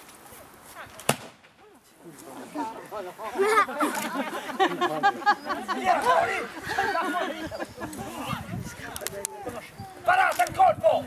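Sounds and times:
pistol shot crack: 0:01.0 - 0:01.6.

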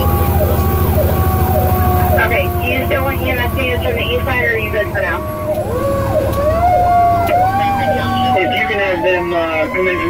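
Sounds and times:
electronic siren sweeping: 0:00.0 - 0:10.0
truck engine rumble: 0:00.0 - 0:10.0.

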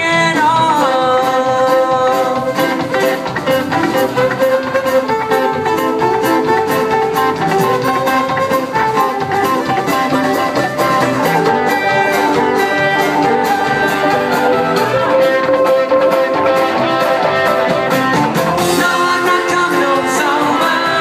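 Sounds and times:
acoustic guitars: 0:00.0 - 0:21.0
drum kit beat: 0:00.0 - 0:21.0
electric bass: 0:00.0 - 0:21.0
fiddle: 0:00.0 - 0:21.0.

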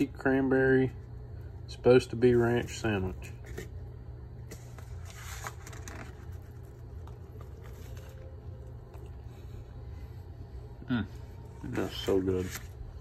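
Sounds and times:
steady low hum: 0:00.0 - 0:13.0
sandwich handling and eating noises: 0:03.2 - 0:09.8.

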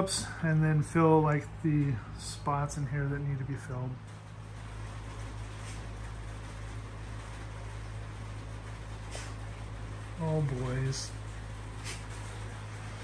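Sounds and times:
low machine hum: 0:00.0 - 0:13.0.

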